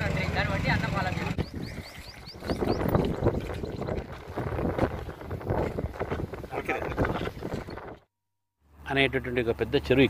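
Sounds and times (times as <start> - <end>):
wind rumbling on microphone: 1.0 - 8.1.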